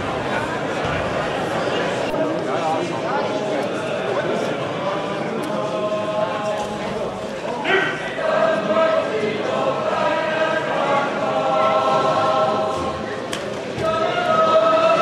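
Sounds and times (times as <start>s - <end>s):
choir singing long notes: 4.8s - 15.0s.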